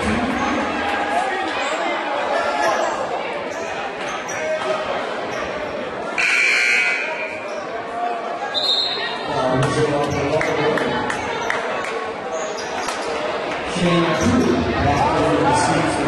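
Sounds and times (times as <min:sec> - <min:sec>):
voices echoing in hall: 0:00.0 - 0:16.0
gym buzzer: 0:06.2 - 0:07.4.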